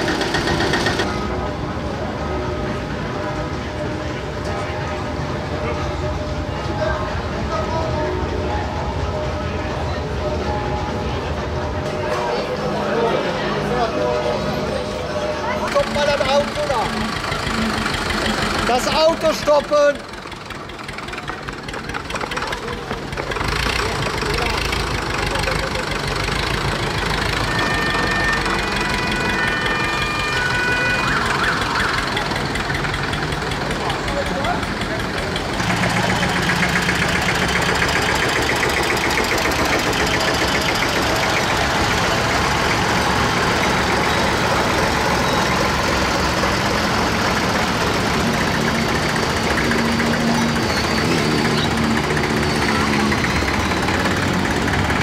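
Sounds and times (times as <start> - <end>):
tractor engines running: 0.0 - 55.0
people talking: 4.4 - 20.0, 22.1 - 26.3, 33.6 - 38.2.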